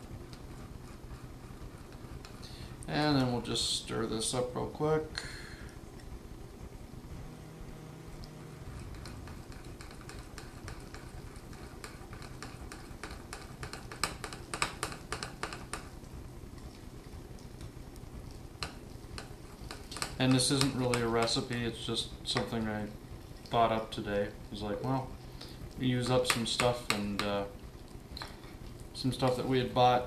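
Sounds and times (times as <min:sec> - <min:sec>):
spoon stirring thick batter: 0:00.0 - 0:06.3, 0:07.4 - 0:30.0.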